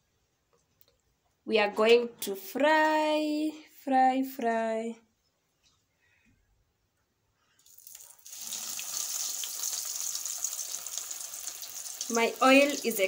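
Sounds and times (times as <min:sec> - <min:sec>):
food frying in hot oil: 0:07.7 - 0:13.0.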